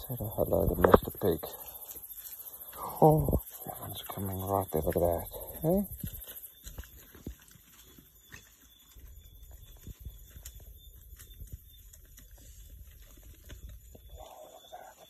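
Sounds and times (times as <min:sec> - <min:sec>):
animals rustling on stony ground: 0:00.0 - 0:15.0.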